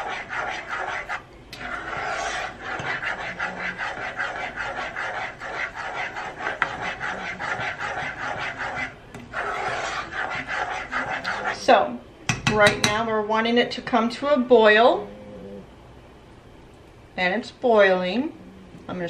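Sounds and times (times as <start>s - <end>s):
spoon scraping a saucepan: 0.0s - 11.7s.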